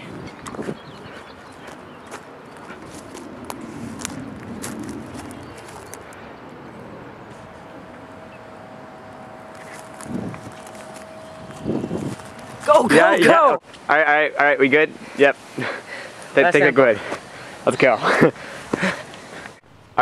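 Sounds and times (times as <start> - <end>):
rustles and clicks in grass: 0.0 - 6.3, 9.4 - 12.8
faint steady hum: 1.7 - 20.0.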